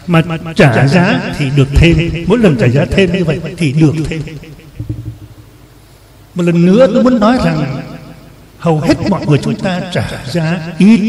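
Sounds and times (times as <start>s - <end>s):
faint low background rumble: 0.0s - 10.8s.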